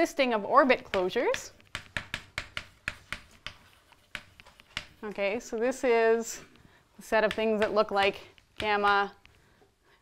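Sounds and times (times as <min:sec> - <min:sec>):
chalk tapping on chalkboard: 0:00.7 - 0:05.1, 0:07.2 - 0:09.4
chalk scraping: 0:02.5 - 0:05.0.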